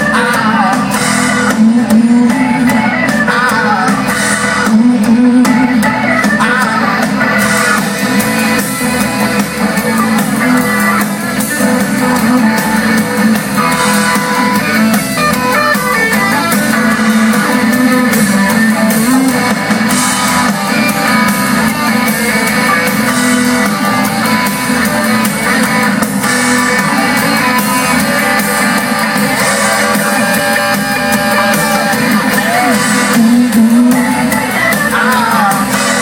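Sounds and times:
electric guitars: 0.0 - 36.0
live band playing loudly: 0.0 - 36.0.

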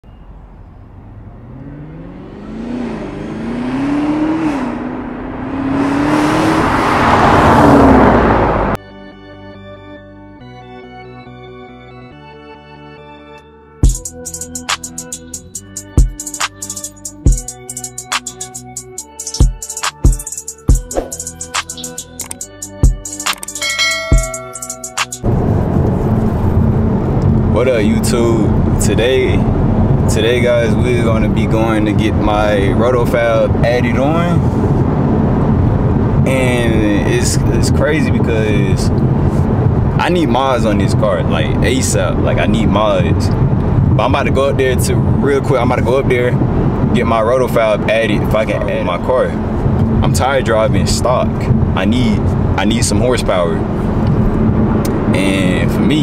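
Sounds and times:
car engine accelerating past: 0.0 - 8.8
music: 8.8 - 25.3
car engine rumble inside cabin: 24.1 - 55.8.

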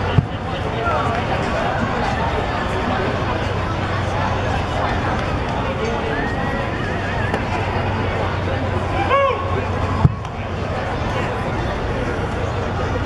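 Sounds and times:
crowd chatter: 0.0 - 13.0
fan shouting: 0.0 - 13.0.

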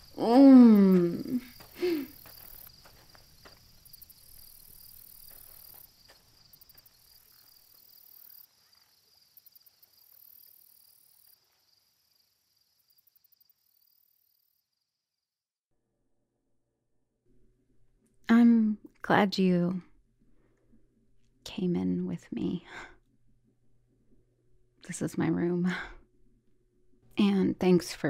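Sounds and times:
crickets and insects chirping: 0.0 - 15.2.

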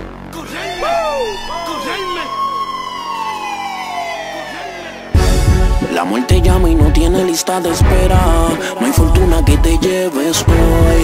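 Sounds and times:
siren wailing tone gliding downward: 0.4 - 5.3.

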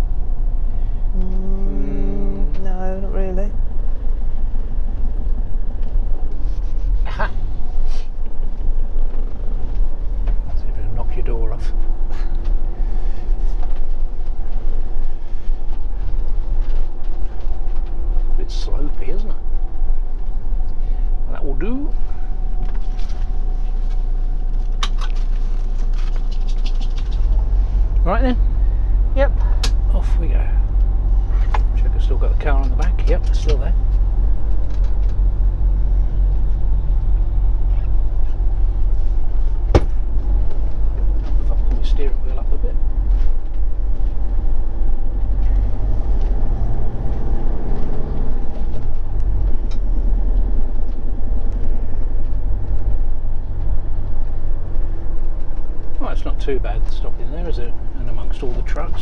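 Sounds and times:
engine humming at low revs: 0.0 - 59.0.

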